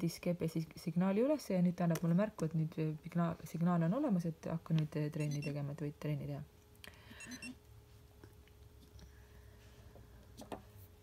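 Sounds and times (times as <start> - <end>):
faint electronic watch beeps: 5.2 - 5.6, 7.2 - 7.6.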